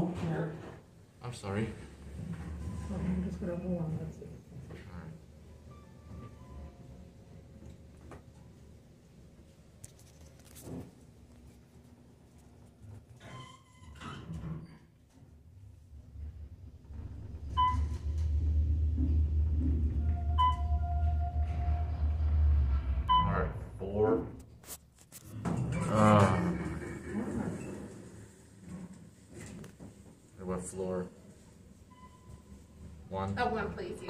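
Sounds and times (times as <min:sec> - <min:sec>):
elevator car rumbling: 0:16.0 - 0:23.8
short electronic beeps: 0:17.6 - 0:18.1, 0:20.2 - 0:21.4, 0:23.1 - 0:23.7.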